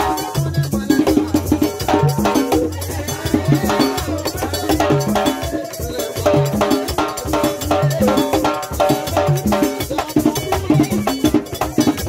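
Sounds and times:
drums: 0.0s - 12.0s.

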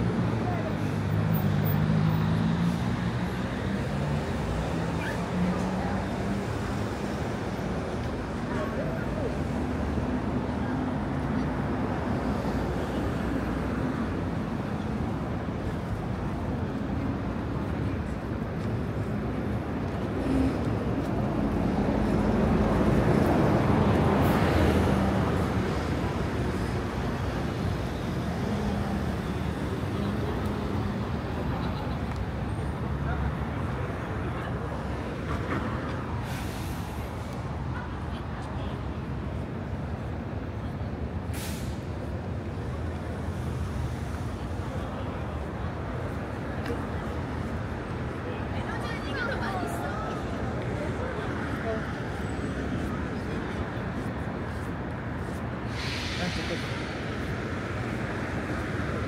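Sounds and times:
passers-by talking: 0.0s - 59.0s
vehicle traffic hum: 0.0s - 59.0s.

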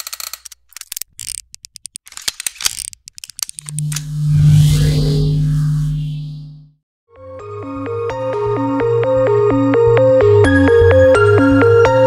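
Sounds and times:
glitchy clicks and crackles: 2.6s - 4.3s
deep electronic hum: 3.6s - 6.8s.

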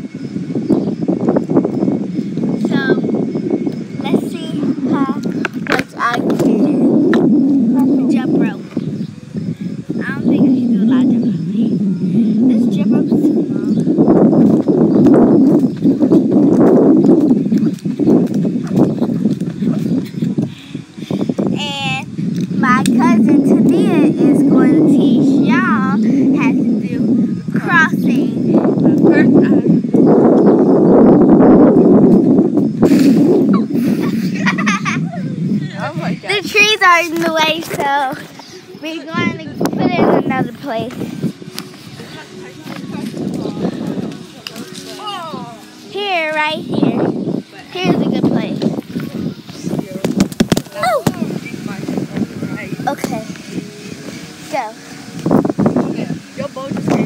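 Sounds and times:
indistinct talking: 0.0s - 57.0s
loud steady low noise: 0.0s - 57.0s.

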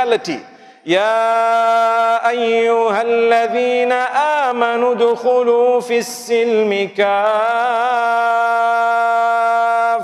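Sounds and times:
man reciting melodically: 0.0s - 10.0s.

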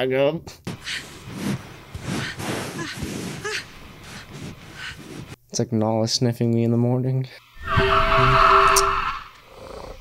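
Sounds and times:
animal sniffing breathily: 0.8s - 5.4s.

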